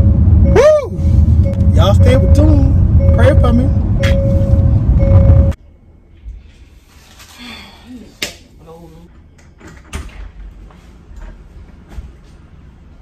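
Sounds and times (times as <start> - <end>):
door opening and shutting: 9.6 - 10.5.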